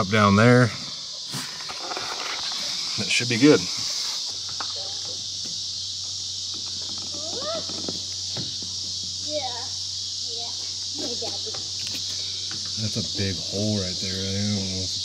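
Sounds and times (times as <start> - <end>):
insects shrilling: 0.0 - 15.0.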